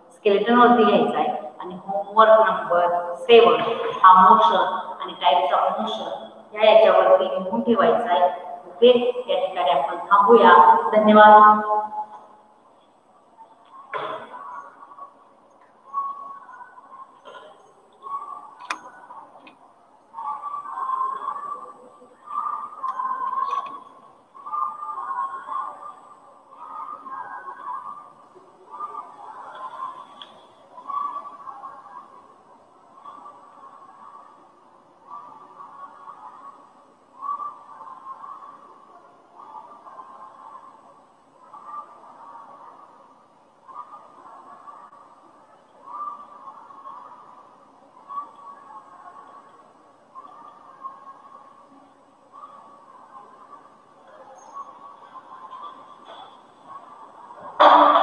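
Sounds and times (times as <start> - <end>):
muffled indistinct voices: 0.0 - 58.0.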